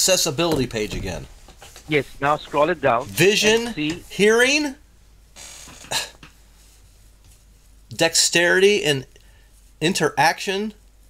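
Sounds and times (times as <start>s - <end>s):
sharp cough: 5.9s - 6.2s.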